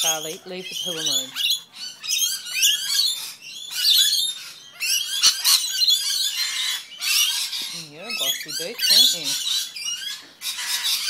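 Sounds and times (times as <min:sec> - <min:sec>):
lorikeets chattering and squawking: 0:00.0 - 0:11.0
rasping bird screech: 0:00.0 - 0:11.0.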